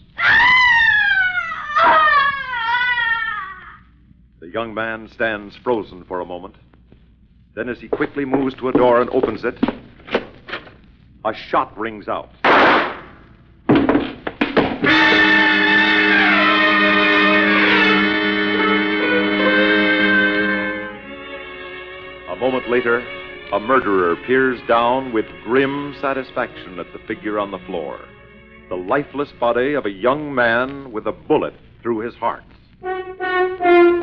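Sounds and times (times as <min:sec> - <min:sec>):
person shrieking: 0:00.2 - 0:03.8
loud sustained music chord: 0:14.8 - 0:29.9.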